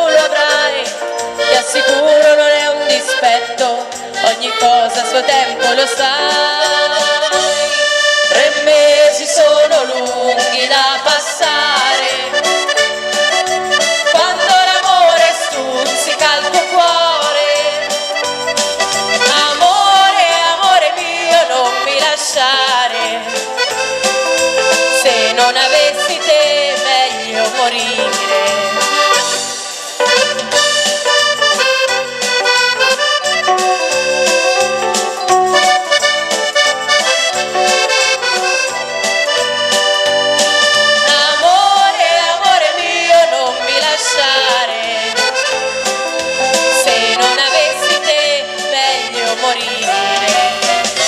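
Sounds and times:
accordion melody: 0.0s - 51.0s
dance band: 0.0s - 51.0s
percussion beat: 9.6s - 43.1s, 44.6s - 51.0s.

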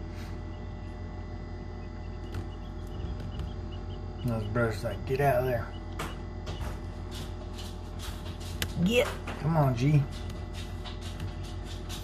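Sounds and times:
incubator fan humming: 0.0s - 12.0s.

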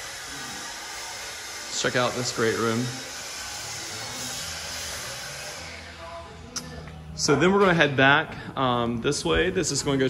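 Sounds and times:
rushing hiss-like noise: 0.0s - 5.7s.

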